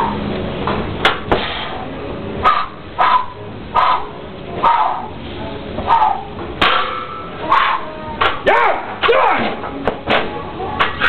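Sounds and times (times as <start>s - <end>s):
dog barking: 2.4s - 5.1s, 5.9s - 6.3s, 7.4s - 7.9s.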